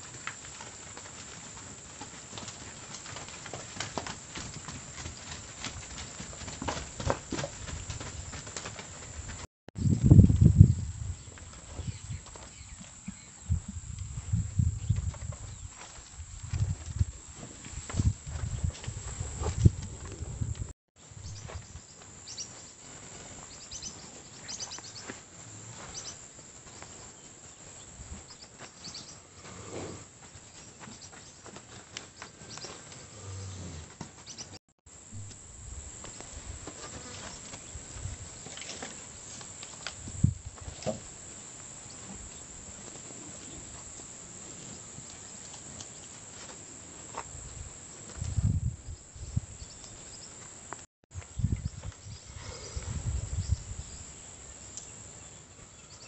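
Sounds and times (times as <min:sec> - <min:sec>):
cattle shuffling in dirt: 0:00.0 - 0:20.7, 0:21.3 - 0:34.6, 0:35.2 - 0:48.6.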